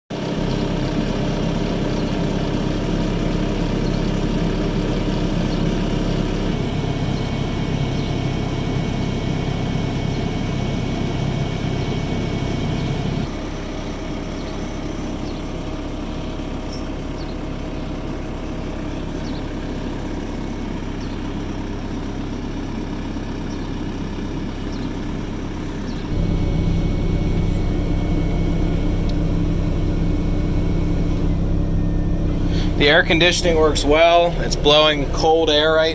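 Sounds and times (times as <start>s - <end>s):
diesel excavator engine idling: 0.1s - 35.9s.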